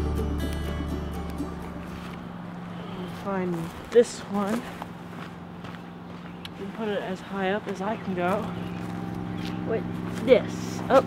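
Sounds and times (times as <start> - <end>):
background music: 0.0 - 2.4.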